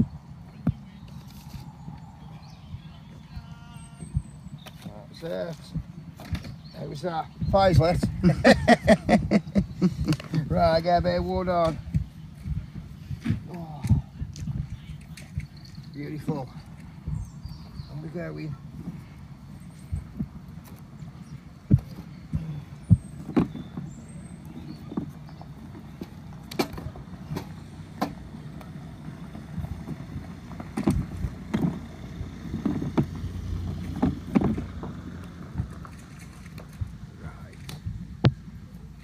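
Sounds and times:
fire rumbling: 0.0 - 39.0.

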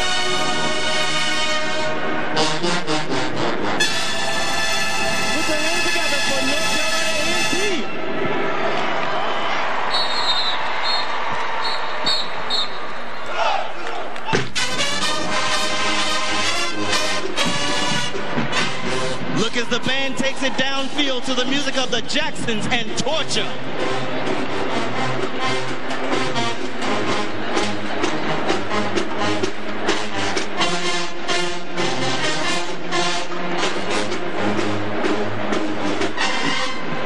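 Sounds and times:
marching band playing: 0.0 - 8.5, 14.3 - 37.0.

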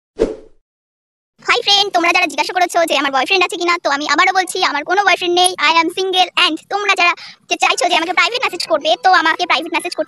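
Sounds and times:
person speaking: 1.4 - 10.0.

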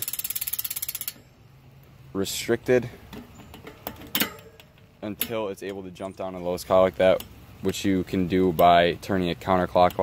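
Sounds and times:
bicycle hub clicking rapidly: 0.0 - 1.2.

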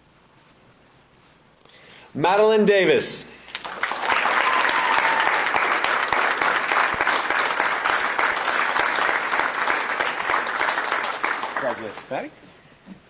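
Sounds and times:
audience applauding: 3.5 - 12.3.

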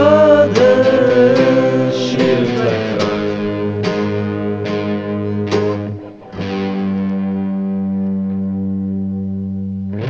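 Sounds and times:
electric guitar chord ringing: 0.0 - 10.0
guitar strum: 0.0 - 10.0.

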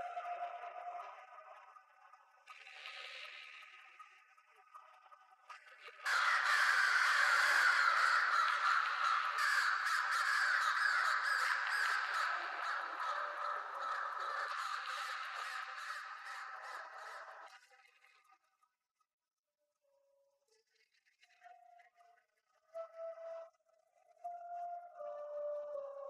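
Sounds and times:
chorus of harsh bird cries: 6.1 - 17.5.

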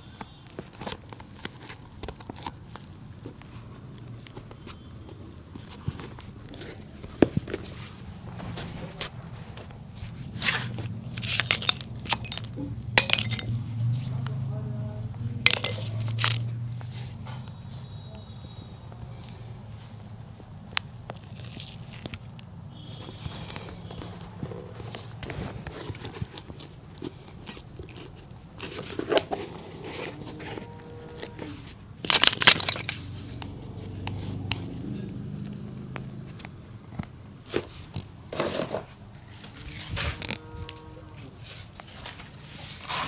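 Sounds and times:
small clicks scratches and rustles: 20.6 - 38.1.

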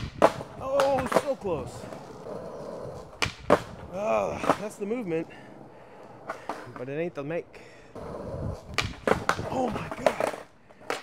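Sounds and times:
skateboard clacks: 0.0 - 5.0, 6.0 - 7.1, 8.0 - 11.0
skateboard wheels rolling on concrete: 0.0 - 11.0.

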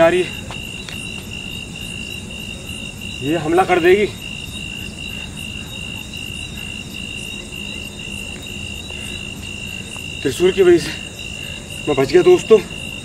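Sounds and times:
crickets chirping: 0.0 - 13.0.

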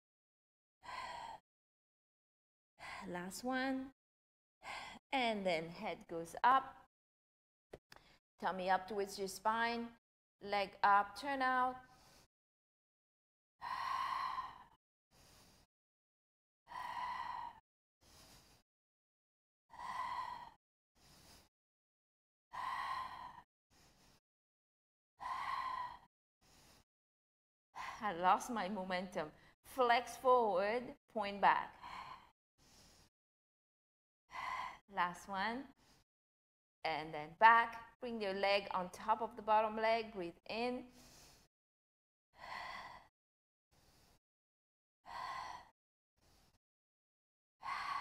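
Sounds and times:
woman breathing hard: 0.9 - 1.4, 13.6 - 15.7, 16.7 - 18.6, 19.7 - 21.5, 22.5 - 24.2, 25.2 - 26.9, 31.8 - 33.1, 34.3 - 34.9, 42.4 - 43.1, 45.1 - 46.6, 47.6 - 48.0.

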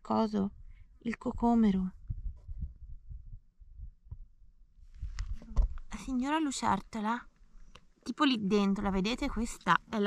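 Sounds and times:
low thumping rumble on microphone: 0.4 - 6.1.

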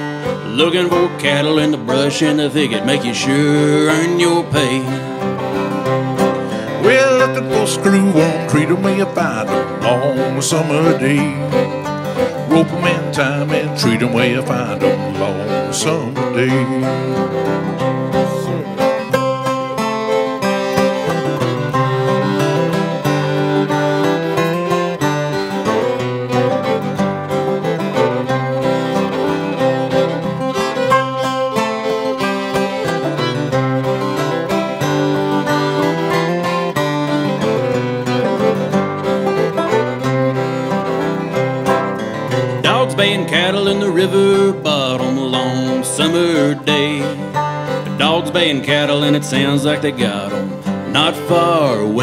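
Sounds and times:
acoustic guitar: 0.0 - 52.0
banjo: 0.0 - 52.0
fiddle: 0.0 - 52.0.

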